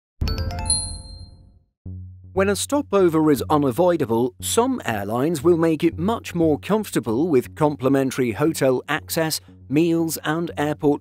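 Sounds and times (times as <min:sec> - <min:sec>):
logo chime: 0:00.2 - 0:01.6
low steady music tone: 0:00.2 - 0:11.0.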